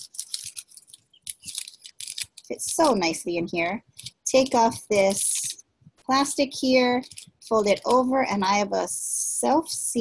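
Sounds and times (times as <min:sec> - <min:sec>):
cellophane bag crinkling: 0:00.0 - 0:03.1, 0:07.0 - 0:08.0.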